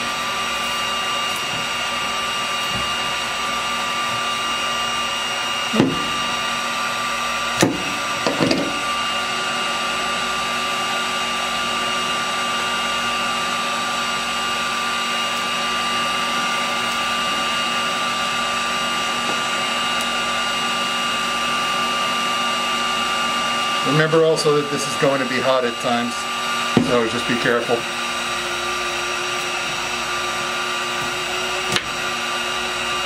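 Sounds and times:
heat gun blower hiss and whine: 0.0s - 33.0s.

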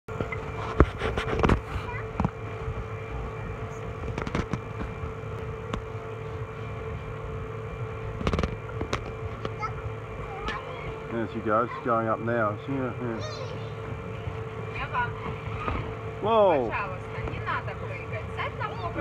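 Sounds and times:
electric air blower humming: 0.1s - 19.0s
faint children's voices: 1.4s - 4.0s, 9.3s - 14.5s.

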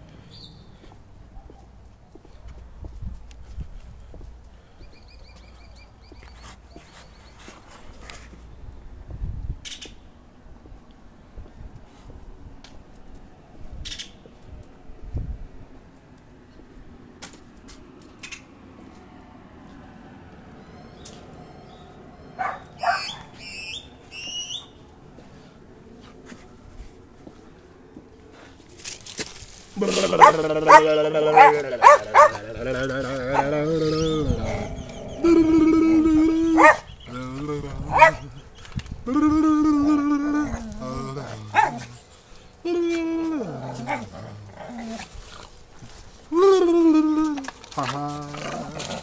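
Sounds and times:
dog barking: 22.4s - 23.4s, 29.8s - 32.6s, 36.5s - 37.0s, 37.8s - 38.3s, 41.5s - 41.9s
dog whining high-pitched: 22.4s - 23.7s, 30.0s - 38.3s
plastic bag rustling: 28.7s - 29.8s.

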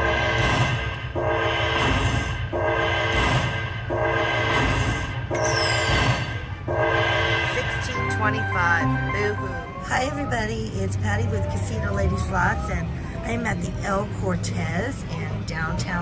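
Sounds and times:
low casino hum: 0.0s - 16.0s
slot machine win tune: 6.7s - 9.8s.

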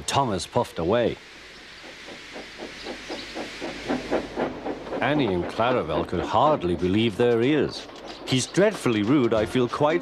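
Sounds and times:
steam hissing: 0.0s - 8.4s
steam engine chuffing: 0.4s - 10.0s.

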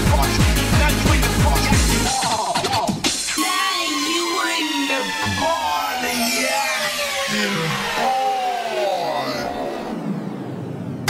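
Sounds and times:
synth sweep: 3.4s - 11.0s
tones gliding downward: 3.8s - 11.0s.

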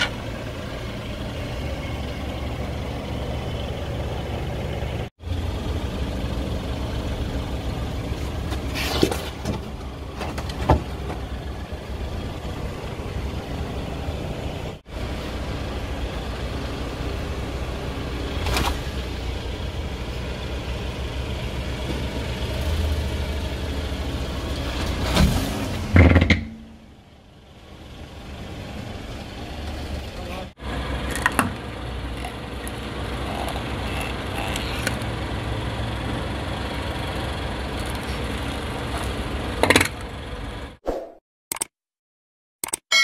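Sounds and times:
car engine idling: 0.0s - 24.9s, 25.8s - 40.8s.

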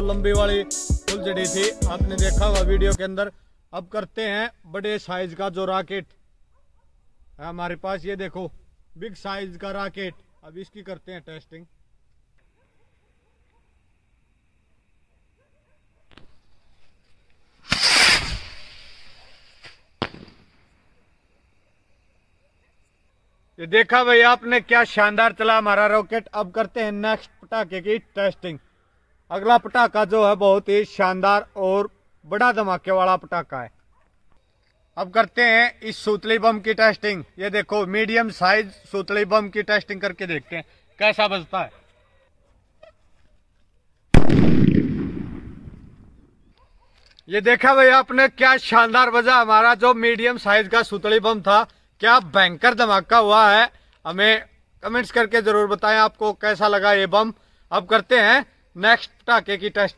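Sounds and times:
firework bang: 17.6s - 19.0s, 19.6s - 20.6s, 44.2s - 46.1s
rocket whoosh: 17.6s - 20.5s
rumbling echo: 44.2s - 46.0s.

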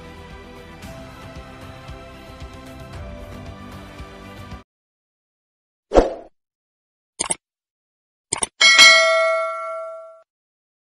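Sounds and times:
bright bell ding: 8.6s - 10.2s.

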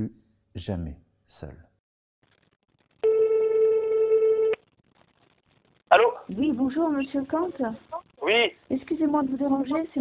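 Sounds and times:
telephone ringback tone: 3.0s - 4.5s.

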